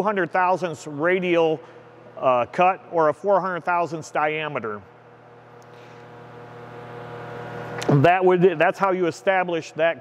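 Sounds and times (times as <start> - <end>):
steady low hum: 0.0 - 10.0
man speaking: 7.8 - 10.0.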